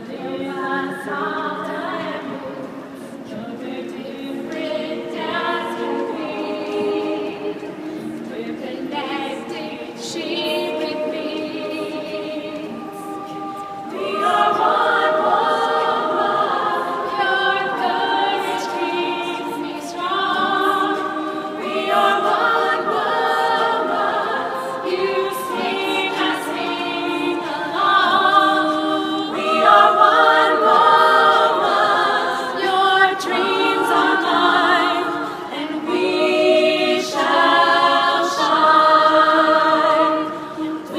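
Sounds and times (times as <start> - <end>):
women's choir singing in harmony: 0.0 - 40.9.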